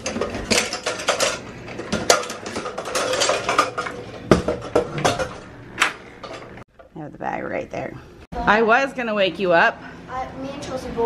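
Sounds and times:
metal lanterns clinking and rattling: 0.0 - 6.9.

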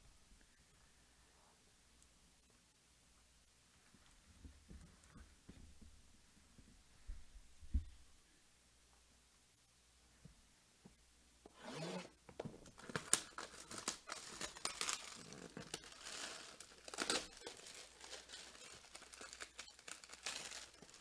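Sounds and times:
plastic wrap tearing and crinkling: 11.8 - 21.0.

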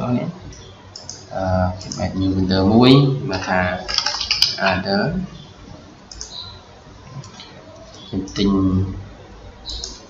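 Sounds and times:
faint background noise: 0.0 - 10.0
computer mouse click: 0.5 - 1.2, 6.1 - 6.5.

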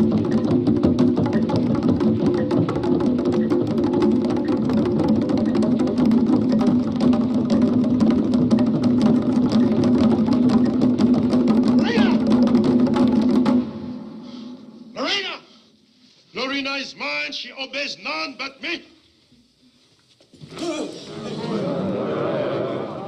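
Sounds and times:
fast ritual drumming: 0.0 - 14.1
person shouting a cry: 11.8 - 12.2.

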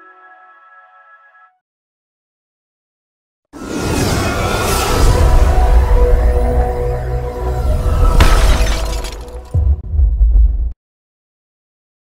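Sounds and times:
glass shattering effect: 8.1 - 9.6
deep low hit: 9.6 - 10.8.

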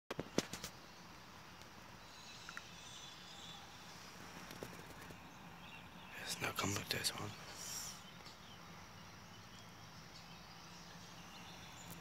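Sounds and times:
faint outdoor background: 0.1 - 12.0
faint high chirps: 1.9 - 4.1.

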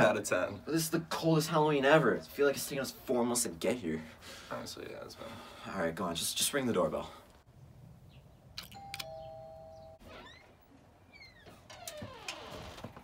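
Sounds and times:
doorbell button click: 8.6 - 10.0
doorbell ding-dong chime: 8.7 - 10.0
faint falling squeaks: 9.8 - 13.0.

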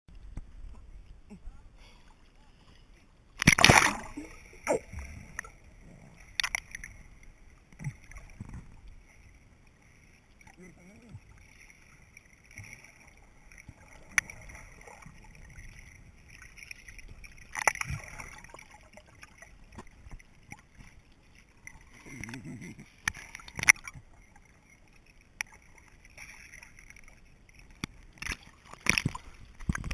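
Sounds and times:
muffled water sloshing: 0.1 - 29.9.

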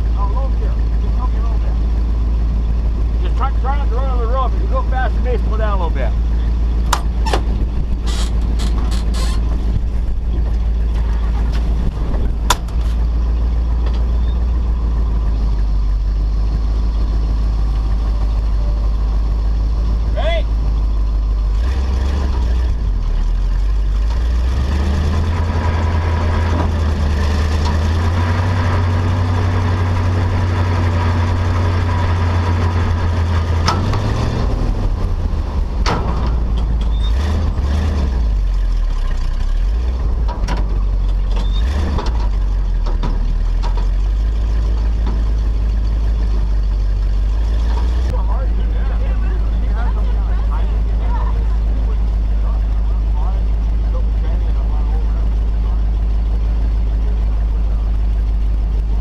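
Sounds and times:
truck engine running: 0.0 - 59.0.

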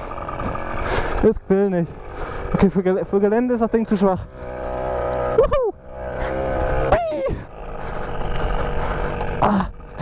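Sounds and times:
mini motorcycle engine running: 0.0 - 10.0.

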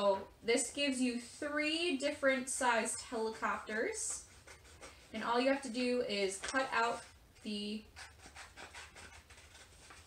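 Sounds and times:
scissors snipping paper: 8.0 - 10.0.

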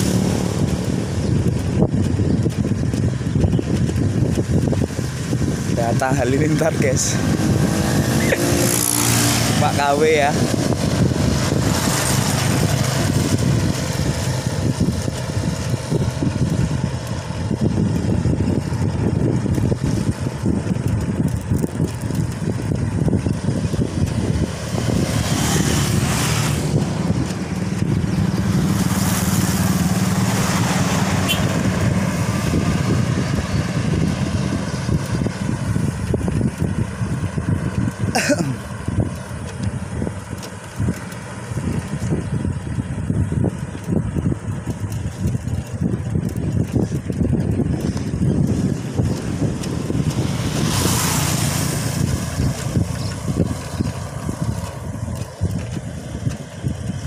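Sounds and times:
motorcycle passing: 0.0 - 57.0
road noise: 0.0 - 57.0
wind rumble on microphone: 0.0 - 57.0
car engine passing: 6.6 - 16.0, 23.5 - 38.8, 48.4 - 55.0.

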